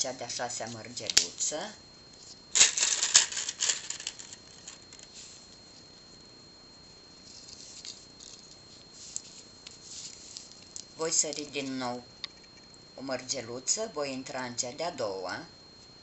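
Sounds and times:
beads clicking and rattling: 2.6s - 4.8s.

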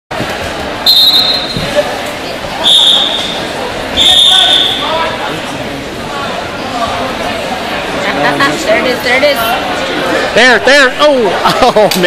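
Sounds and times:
crowd chatter: 0.1s - 12.0s
referee's whistle blasts: 0.8s - 1.6s, 2.6s - 3.4s, 4.0s - 4.9s.

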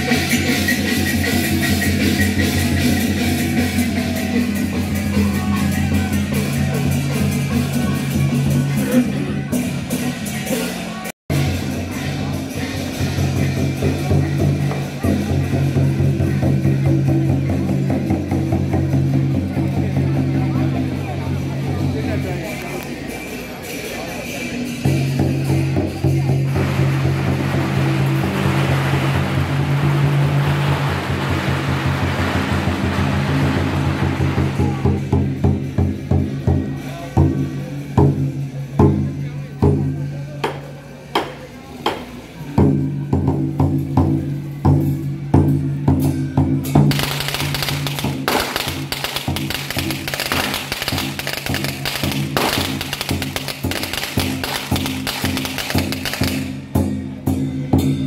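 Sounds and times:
percussion music: 0.0s - 58.0s.

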